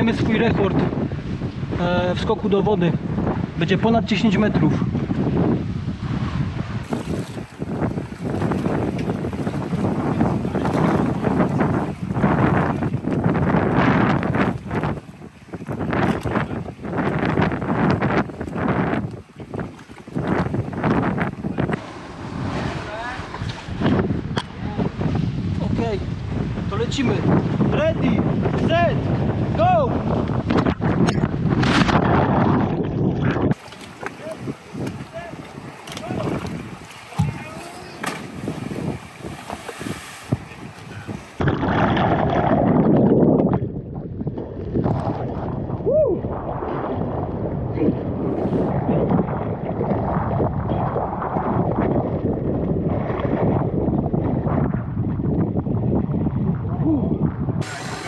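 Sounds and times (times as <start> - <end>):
sea water: 0.0 - 58.0
wind buffeting microphone: 0.0 - 58.0
person speaking: 37.1 - 38.0.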